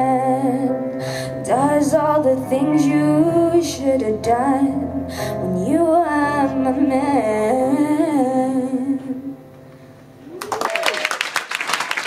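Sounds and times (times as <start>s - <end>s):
woman singing: 0.0s - 9.4s
audience applause: 10.3s - 12.0s
audience cheering: 10.3s - 12.0s.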